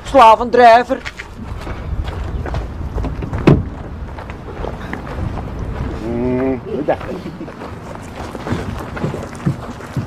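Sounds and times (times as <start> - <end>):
wind buffeting microphone: 0.0 - 10.0
faint footsteps walking: 0.8 - 10.0.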